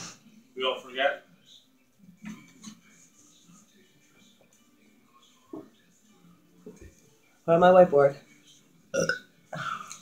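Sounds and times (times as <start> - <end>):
woman burping: 8.9 - 9.2.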